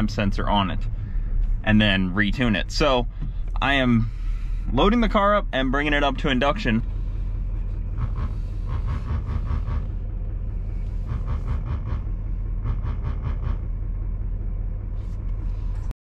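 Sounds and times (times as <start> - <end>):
truck engine running at low revs: 0.0 - 16.0.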